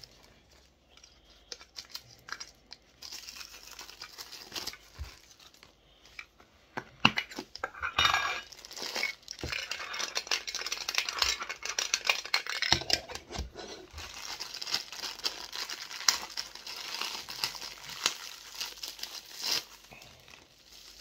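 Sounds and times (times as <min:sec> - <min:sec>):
plastic bag crinkling: 0:00.0 - 0:06.2, 0:08.4 - 0:21.0.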